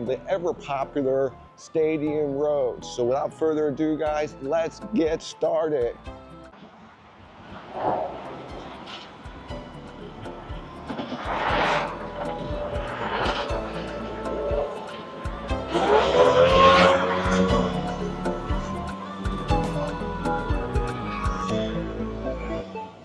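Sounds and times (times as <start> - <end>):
quiet background music: 0.0 - 6.6, 8.0 - 23.0
cars passing on street: 6.1 - 23.0.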